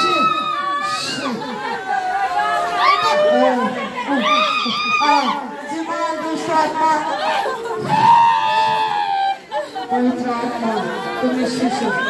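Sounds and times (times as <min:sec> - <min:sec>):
long held cry: 0:00.0 - 0:05.5
crowd voices calling out: 0:00.0 - 0:12.0.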